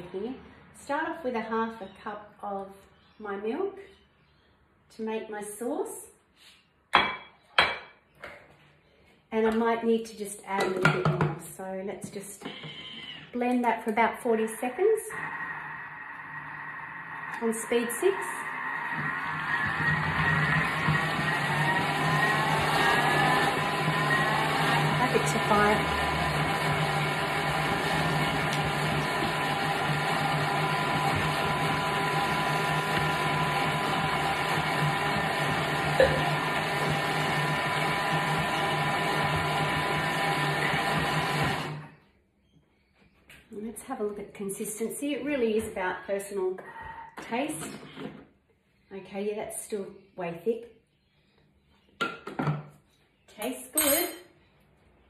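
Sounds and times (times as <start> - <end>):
blender motor whirring: 15.1 - 41.9.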